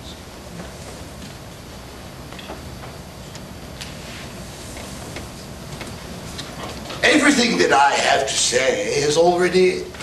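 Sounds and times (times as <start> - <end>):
room noise: 0.0 - 10.0.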